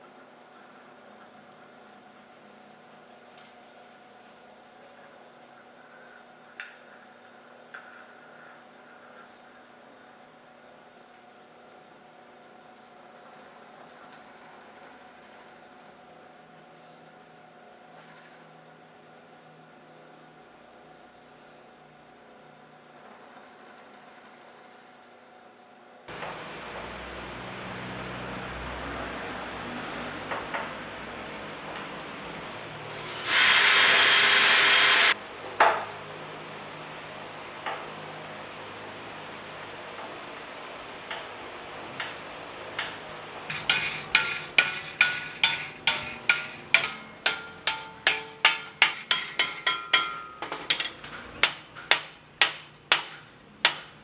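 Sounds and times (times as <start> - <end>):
power tool running: 32.8 - 35.2, 43.5 - 47.0
hammer ringing on steel sheet: 43.6 - 50.6.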